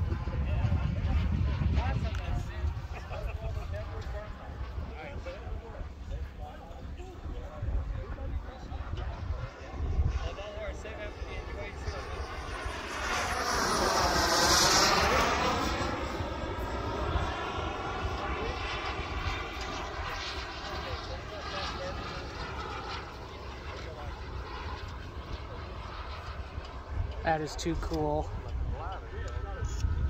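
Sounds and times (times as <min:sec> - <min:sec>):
model airplane engine passing: 0:00.0 - 0:30.0
wind rumble on microphone: 0:00.0 - 0:30.0.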